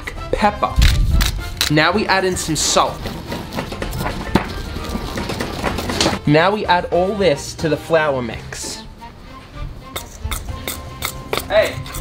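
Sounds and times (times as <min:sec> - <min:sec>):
background music: 0:00.0 - 0:12.0
pestle grinding in stone mortar: 0:00.8 - 0:06.2, 0:09.9 - 0:12.0.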